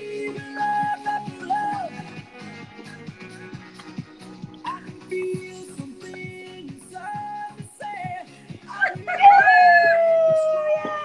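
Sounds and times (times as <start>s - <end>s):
pop music: 0.0s - 11.0s
woman whooping: 9.1s - 11.0s.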